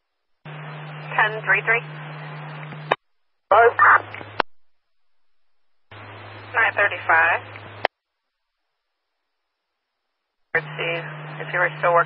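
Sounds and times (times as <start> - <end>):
low hum: 0.0 - 8.5, 10.1 - 12.0
radio hiss: 0.5 - 4.4, 5.9 - 7.9, 10.6 - 12.0
garbled radio speech: 1.1 - 2.4, 3.5 - 4.4, 6.5 - 7.8, 10.6 - 12.0.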